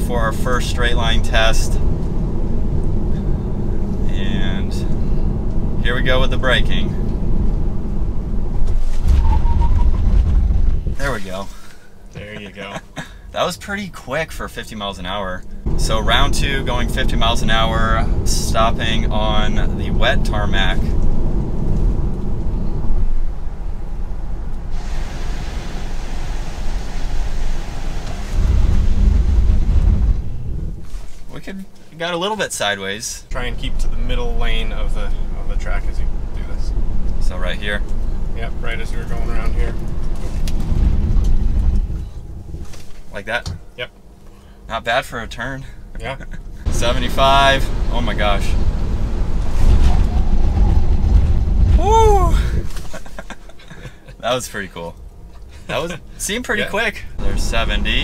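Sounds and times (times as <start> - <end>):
road and tyre rumble: 0.0 - 32.0, 33.2 - 58.0
hiss of water spray off tyres: 24.7 - 29.6.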